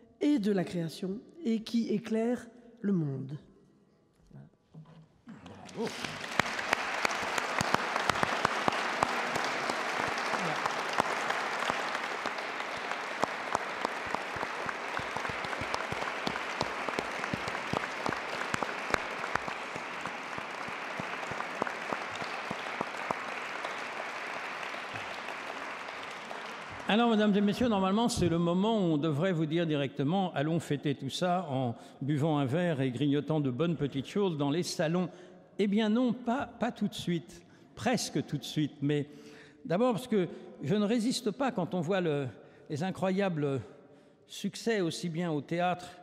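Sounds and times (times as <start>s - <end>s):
audience applauding: 5.5s - 28.3s.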